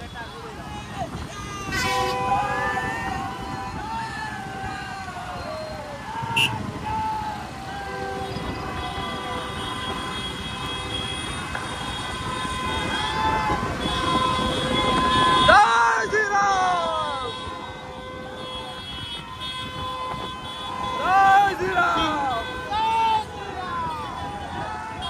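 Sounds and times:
voices shouting: 0.0s - 25.0s
vehicle horns sounding: 1.7s - 3.5s, 6.3s - 6.7s, 7.7s - 15.7s, 16.9s - 25.0s.

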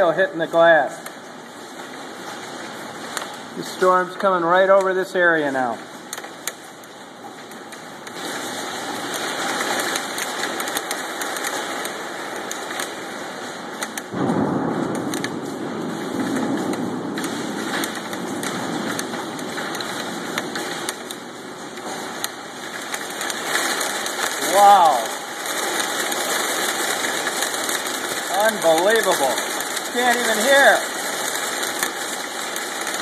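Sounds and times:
hail hitting window glass: 0.0s - 33.0s.

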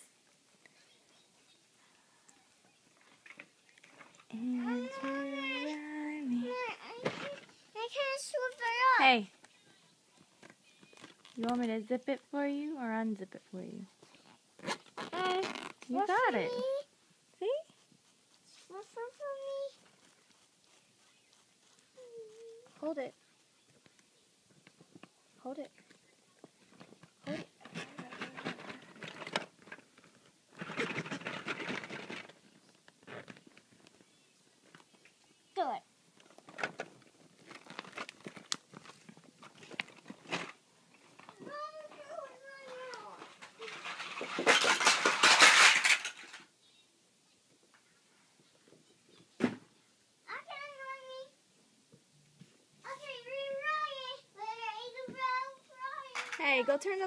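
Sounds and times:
rustling and scratching on fabric: 0.0s - 46.4s.

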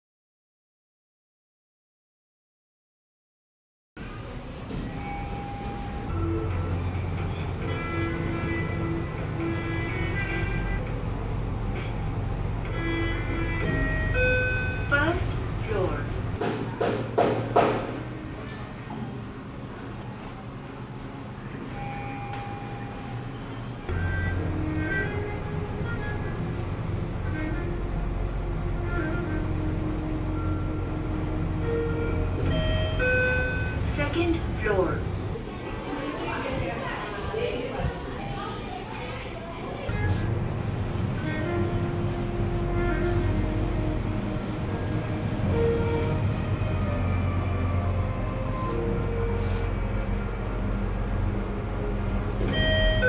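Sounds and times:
lift cabin low hum: 4.0s - 16.4s, 18.0s - 53.0s
lift tones: 4.0s - 16.4s, 18.1s - 36.7s
lift doors sliding open: 4.0s - 34.0s, 39.8s - 53.0s.

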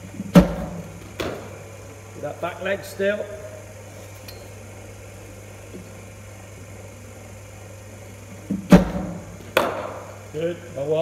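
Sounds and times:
steady low hum: 0.0s - 11.0s
bowling machine firing thump: 0.2s - 1.6s, 8.5s - 10.2s.

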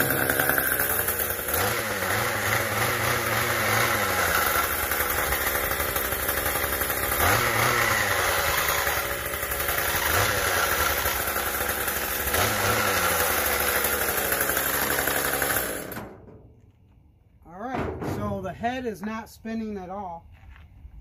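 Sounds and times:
string trimmer engine revving: 0.0s - 16.0s.

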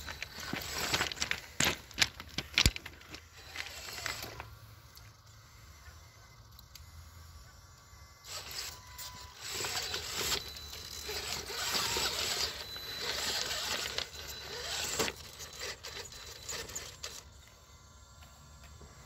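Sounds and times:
scraping against loose rocks: 0.0s - 4.4s, 9.4s - 17.2s.

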